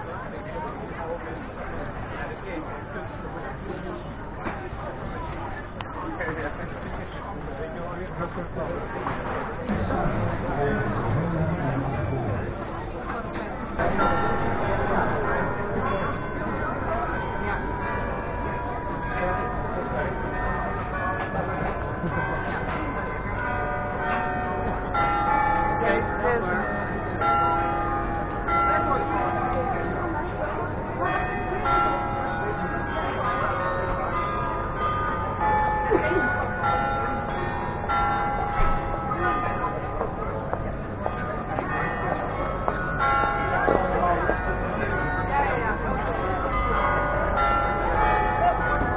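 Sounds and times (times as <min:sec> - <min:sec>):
crowd chatter: 0:00.0 - 0:48.9
church bells ringing: 0:09.7 - 0:48.9.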